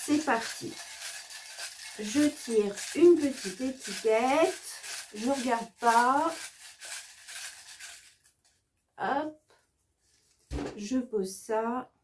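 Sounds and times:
paper labels rustling: 0.0 - 8.6.

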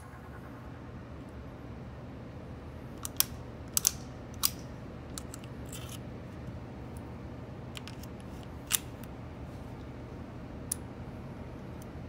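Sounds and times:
pistol metallic clicks: 3.0 - 6.0.

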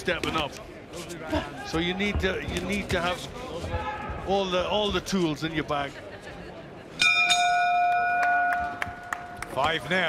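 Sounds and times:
boxing ring bell clanging: 7.0 - 8.8.

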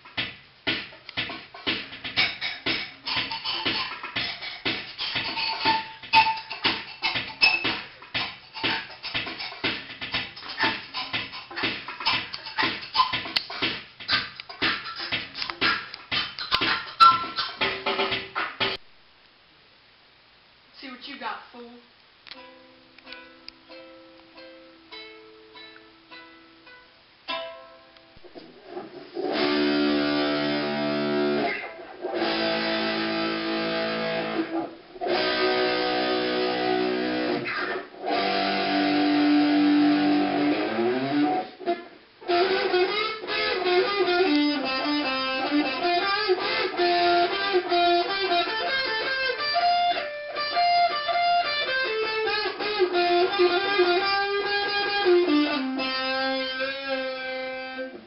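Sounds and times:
electric guitar playing: 22.4 - 58.0.

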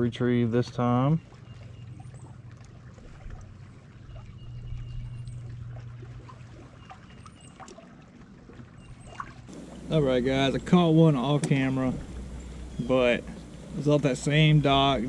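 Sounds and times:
water lapping against boat hull: 0.0 - 15.0
steady low hum: 9.4 - 15.0.

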